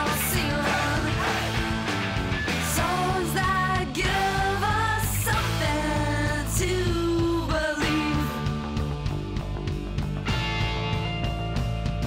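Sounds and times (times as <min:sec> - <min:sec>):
punk rock song: 0:00.0 - 0:12.0.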